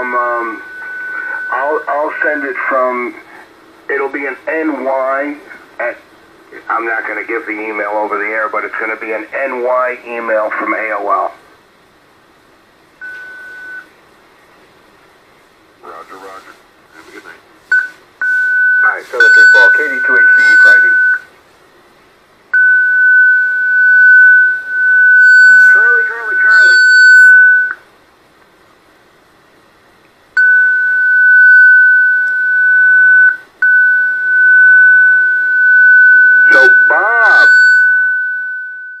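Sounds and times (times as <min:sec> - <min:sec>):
voice over radio: 0:00.0 - 0:00.6, 0:01.2 - 0:03.3, 0:18.8 - 0:21.0, 0:25.7 - 0:26.9, 0:36.5 - 0:37.6
high radio whistle tone: 0:00.0 - 0:01.8, 0:17.7 - 0:21.3, 0:22.6 - 0:27.8, 0:30.4 - 0:39.0.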